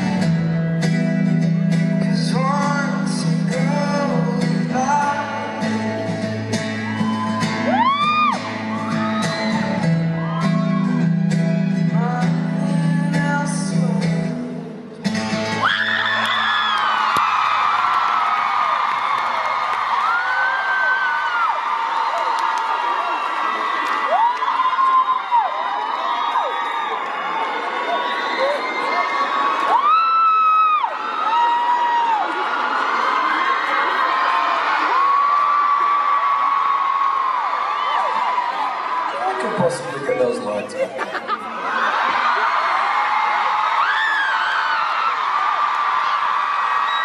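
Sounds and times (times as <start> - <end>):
crowd screaming and cheering: 0.0 - 47.0
loud shrill scream: 15.6 - 18.7, 42.7 - 47.0.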